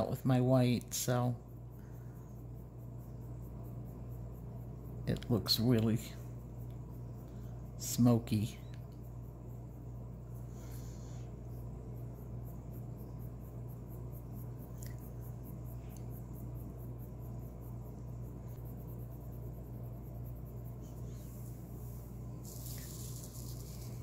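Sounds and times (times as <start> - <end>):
steady low hum: 0.0 - 24.0
colored pencil scratching on paper: 19.0 - 24.0.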